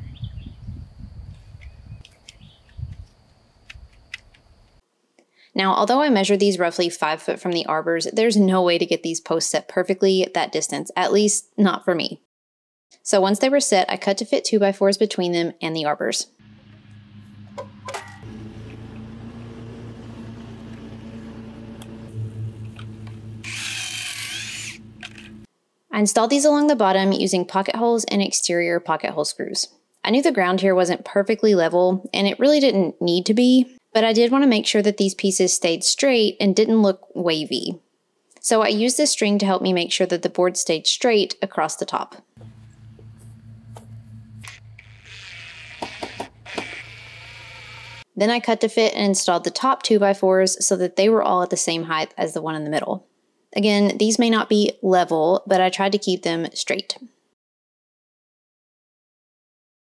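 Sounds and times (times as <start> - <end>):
cordless drill humming: 18.2 - 25.5, 44.4 - 48.1
drill bit cutting wood: 22.7 - 25.4, 44.4 - 48.1
footsteps: 42.4 - 44.6.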